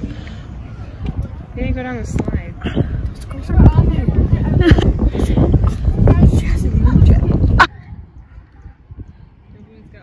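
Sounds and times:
wind rumble on microphone: 0:00.0 - 0:10.0
women talking: 0:01.5 - 0:08.8
women laughing: 0:04.3 - 0:05.5.

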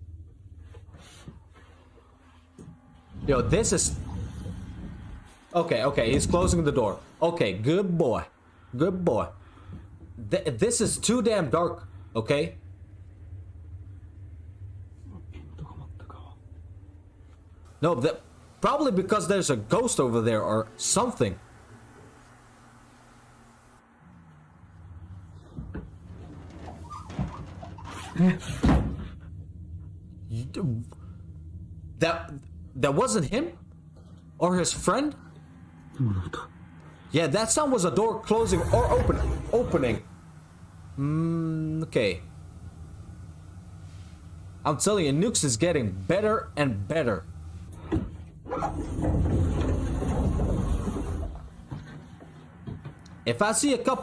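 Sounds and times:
steady low hum: 0:00.0 - 0:54.0
distant sliding door rumble: 0:03.1 - 0:07.2, 0:24.4 - 0:30.2, 0:36.9 - 0:53.2.

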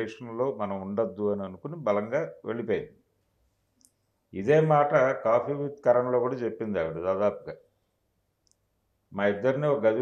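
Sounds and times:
man speaking: 0:00.0 - 0:03.0, 0:04.3 - 0:07.7, 0:09.1 - 0:10.0.

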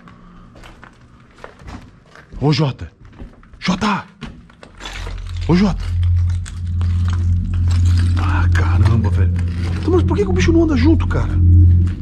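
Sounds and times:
footsteps crunching over rubble: 0:00.0 - 0:09.8
crackles: 0:04.5 - 0:12.0
loud low hum: 0:05.0 - 0:12.0.

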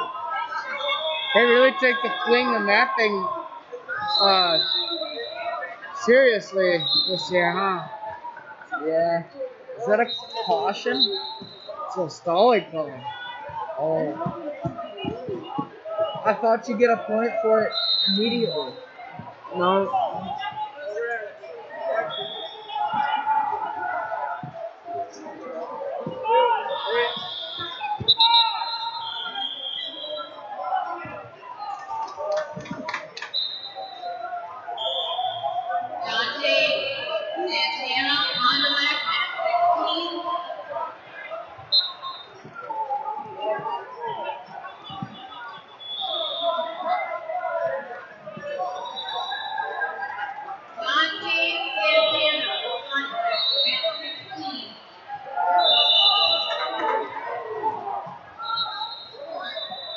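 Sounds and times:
coaches shouting: 0:00.0 - 0:59.9
spectators chattering: 0:00.0 - 0:59.9
voices calling out in large hall: 0:00.0 - 0:59.9
referee whistle blasts: 0:04.1 - 0:05.4, 0:21.8 - 0:23.2, 0:26.3 - 0:30.4, 0:34.8 - 0:35.6, 0:44.8 - 0:46.9, 0:55.4 - 0:57.0, 0:58.4 - 0:59.9.

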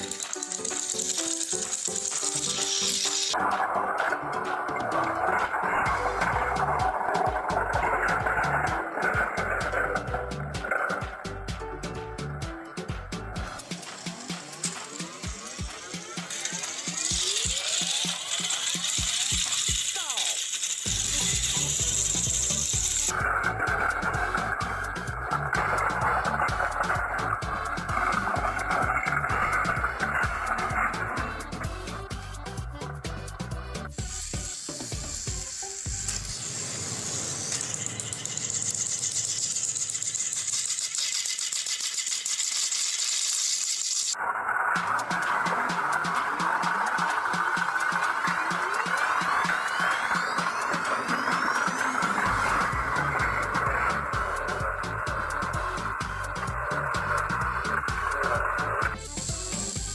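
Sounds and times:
toy train motors whirring: 0:00.0 - 0:11.5, 0:13.3 - 0:59.9
music with heavy beat: 0:01.6 - 0:20.1, 0:20.9 - 0:36.2, 0:44.8 - 0:59.9.

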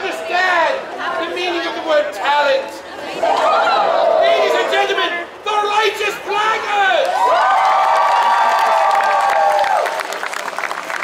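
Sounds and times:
audience cheering: 0:07.0 - 0:11.0
audience clapping: 0:07.0 - 0:11.0.

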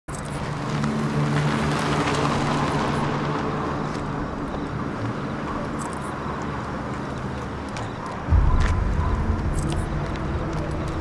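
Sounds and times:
road noise: 0:00.1 - 0:11.0.

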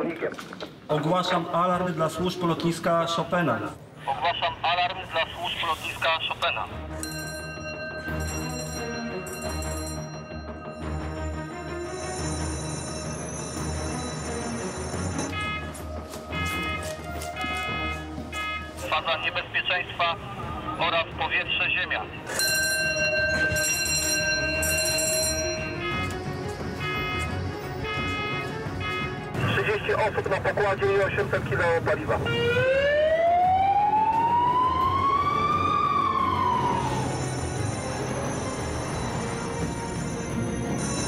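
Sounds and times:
electronic alarm tones: 0:07.5 - 0:18.8, 0:23.3 - 0:29.3
emergency siren wailing: 0:31.8 - 0:40.2.

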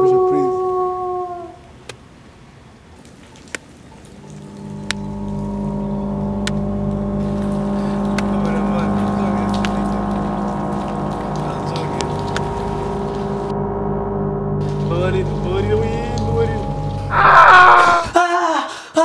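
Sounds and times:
low sustained drone: 0:04.0 - 0:18.1
drawn-out cry: 0:17.0 - 0:18.2.

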